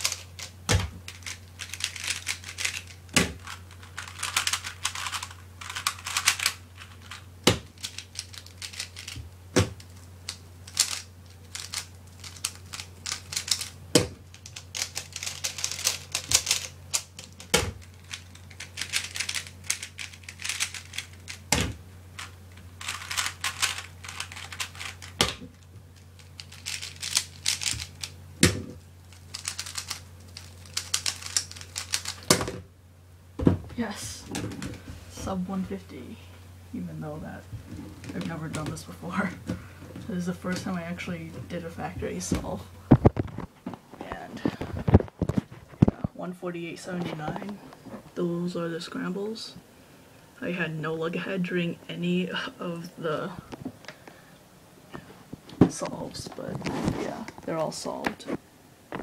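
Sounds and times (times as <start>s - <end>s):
puzzle cube clicking: 14.4s - 21.4s, 26.3s - 28.1s, 29.3s - 32.4s.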